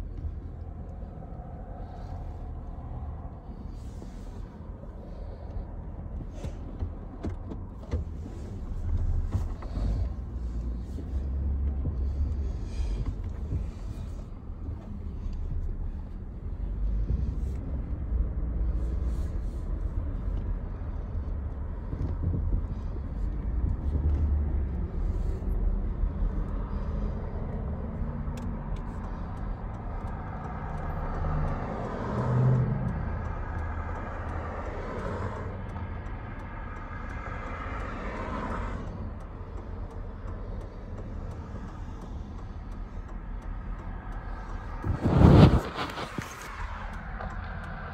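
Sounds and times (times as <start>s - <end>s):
truck engine rumbling from inside cab: 0.0s - 47.9s.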